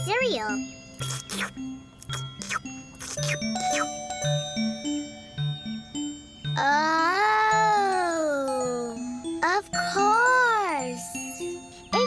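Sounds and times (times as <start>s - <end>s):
light music with chiming notes: 0.0s - 12.0s.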